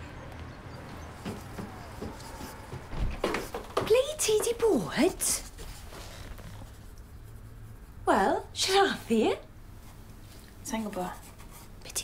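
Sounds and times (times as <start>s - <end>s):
pencil scratching on paper: 10.8s - 12.0s.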